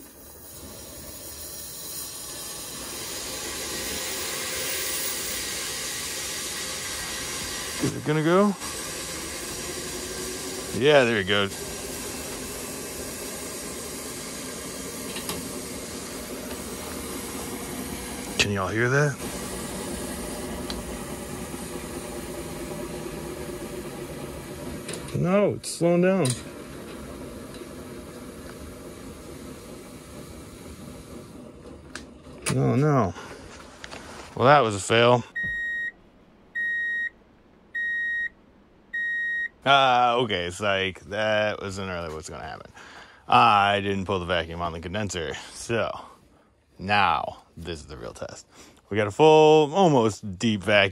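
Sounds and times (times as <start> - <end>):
steam hissing: 0.0 - 31.9.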